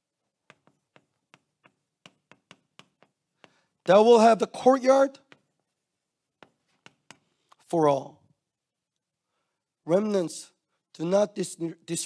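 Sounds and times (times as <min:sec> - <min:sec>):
chalk ticking on blackboard: 0:00.3 - 0:04.3, 0:05.2 - 0:07.6.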